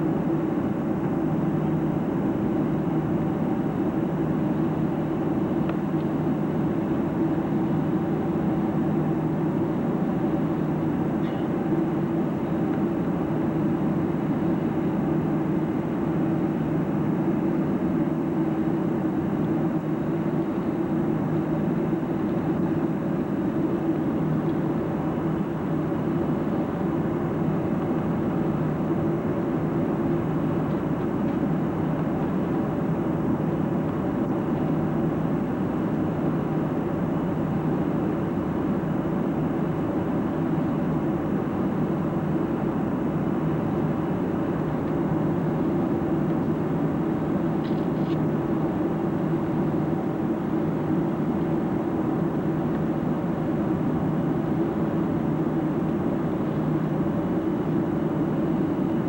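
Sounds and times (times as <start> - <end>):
jet engines droning: 0.0 - 59.0.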